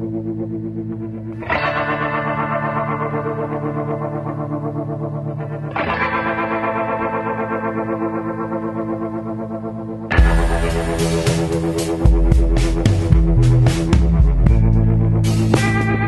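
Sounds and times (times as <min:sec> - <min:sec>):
instrumental music with held chords: 0:00.0 - 0:16.0.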